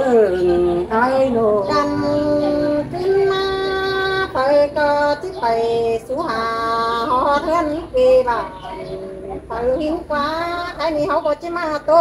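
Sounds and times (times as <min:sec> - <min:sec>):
woman singing unaccompanied: 0:00.0 - 0:12.0.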